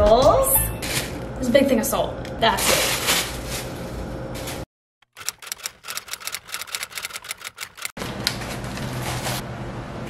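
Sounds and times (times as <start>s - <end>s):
typewriter key clicks: 5.1s - 7.9s.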